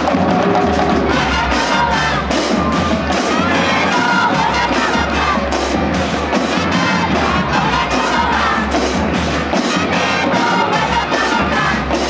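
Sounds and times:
audience cheering and shouting: 0:00.0 - 0:12.0
brass: 0:00.0 - 0:12.0
snare drums: 0:00.0 - 0:12.0.

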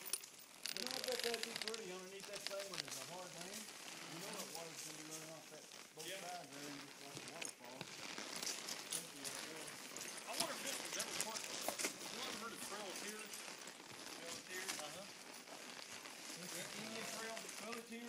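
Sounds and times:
horses walking on a trail: 0:00.0 - 0:18.0
people talking indistinctly: 0:00.7 - 0:07.9, 0:08.9 - 0:15.2, 0:16.3 - 0:18.0.

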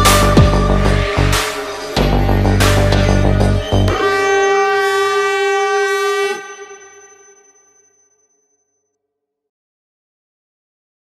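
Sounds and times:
sustained horn-like synth tone: 0:00.0 - 0:08.8.

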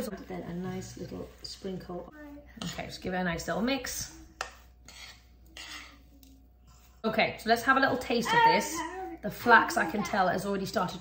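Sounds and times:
metal spoon scraping ceramic bowl: 0:04.4 - 0:06.3.

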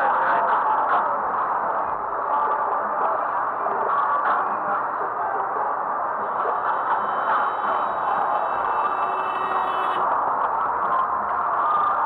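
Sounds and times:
thin high-pitched whine: 0:05.6 - 0:12.0.

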